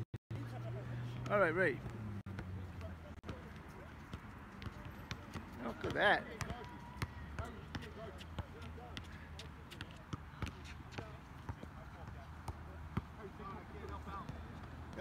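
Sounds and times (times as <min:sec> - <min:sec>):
faint players' voices: 0:00.3 - 0:15.0.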